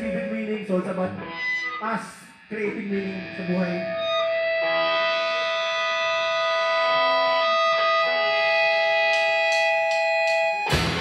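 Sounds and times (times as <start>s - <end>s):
electric guitar ringing notes: 0.0s - 11.0s.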